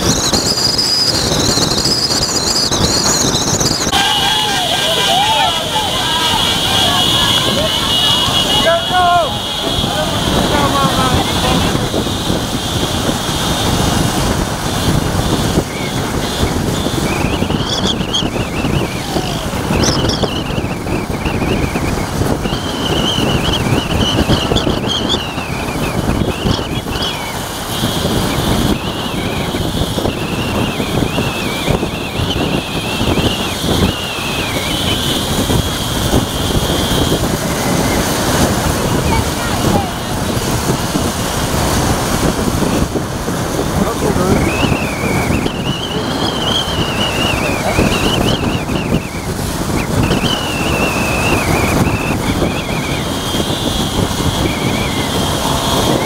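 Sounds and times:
motorcycle and car engines: 0:00.0 - 0:56.0.

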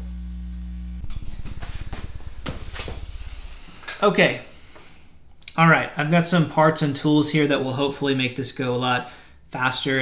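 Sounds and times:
guitar amplifier mains hum: 0:00.0 - 0:10.0
rapid low flutter: 0:01.0 - 0:05.3.

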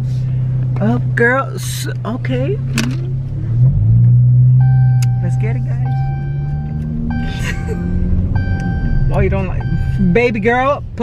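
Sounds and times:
car rumbling: 0:00.0 - 0:11.0.

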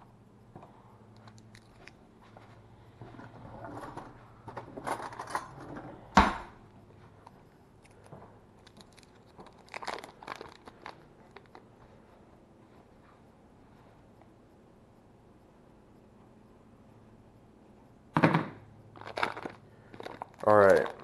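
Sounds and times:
paper wrapper crinkling and tearing: 0:08.6 - 0:11.7, 0:19.0 - 0:21.0.

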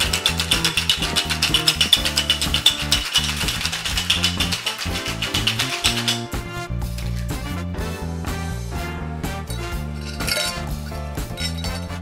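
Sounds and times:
ice clinking against glass: 0:00.0 - 0:06.3, 0:10.0 - 0:10.7, 0:11.4 - 0:11.9
background music: 0:00.0 - 0:12.0.

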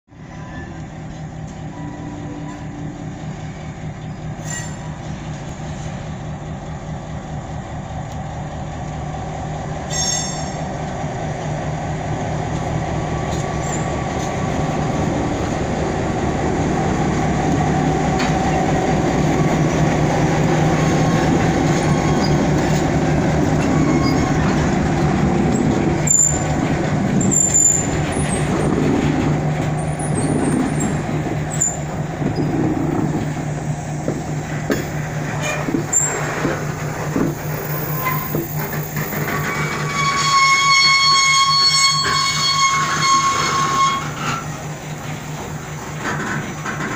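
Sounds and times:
diesel locomotive engine drone: 0:00.1 - 0:46.9
freight cars rolling: 0:00.8 - 0:46.9
wheel squeals: 0:21.1 - 0:22.8, 0:23.5 - 0:24.8, 0:25.5 - 0:26.6, 0:27.2 - 0:28.8, 0:29.8 - 0:33.2, 0:35.4 - 0:36.4, 0:37.2 - 0:44.6.

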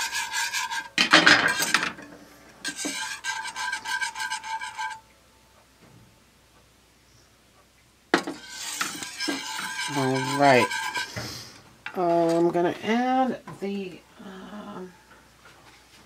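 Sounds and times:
metal whisk clanging against pan: 0:02.7 - 0:05.0, 0:08.3 - 0:11.2.

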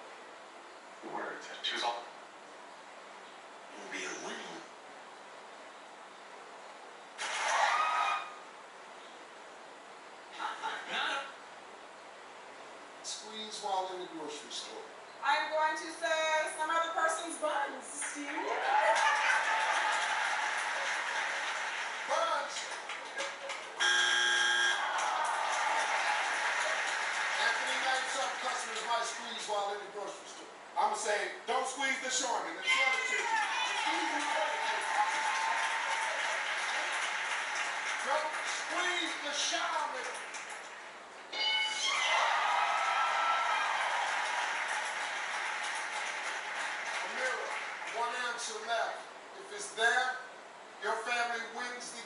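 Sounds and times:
audience clapping and cheering on tv: 0:07.2 - 0:08.4, 0:18.0 - 0:29.6, 0:32.6 - 0:41.0, 0:41.7 - 0:48.6.

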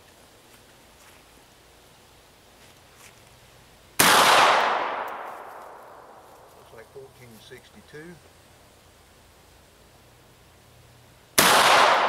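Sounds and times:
shotgun shot: 0:04.0 - 0:06.0, 0:11.4 - 0:12.0.

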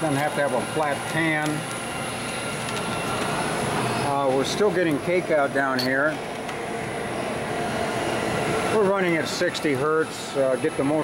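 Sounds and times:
screw press mechanical hum: 0:00.0 - 0:11.0.

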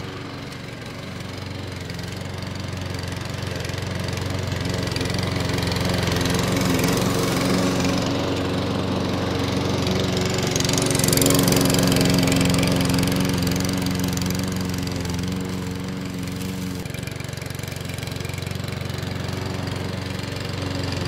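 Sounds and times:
lawnmower cutting grass: 0:00.0 - 0:21.0.

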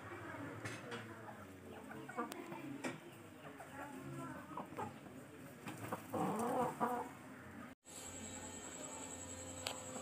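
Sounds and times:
chicken clucking: 0:01.4 - 0:07.2.

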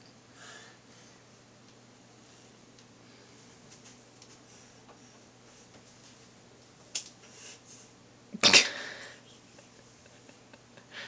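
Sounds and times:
boy sneezing: 0:08.4 - 0:08.9.

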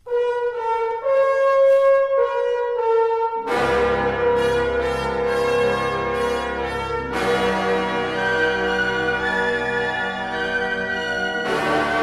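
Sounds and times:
solo horn slow melody: 0:00.0 - 0:12.0
band playing: 0:03.5 - 0:12.0.

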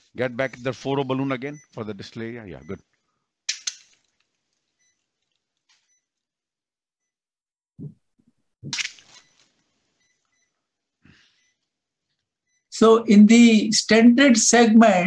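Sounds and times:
faint electronic beeps: 0:00.0 - 0:02.9, 0:09.1 - 0:11.7, 0:12.4 - 0:12.8.

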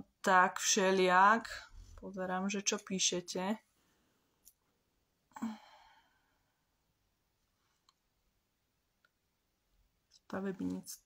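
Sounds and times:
woman sighing: 0:05.3 - 0:06.3.

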